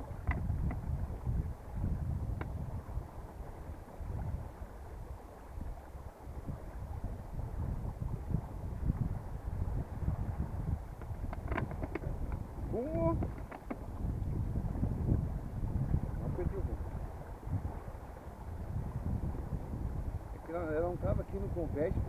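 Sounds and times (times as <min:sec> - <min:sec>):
wind buffeting microphone: 0:00.0 - 0:22.0
plastic water bottles clicking: 0:11.3 - 0:12.4, 0:13.2 - 0:13.8.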